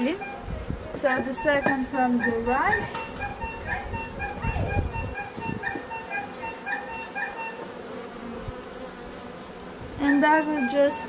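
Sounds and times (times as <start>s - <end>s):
bees buzzing: 0.0s - 11.0s
soft knocks of hive frames: 0.7s - 10.9s.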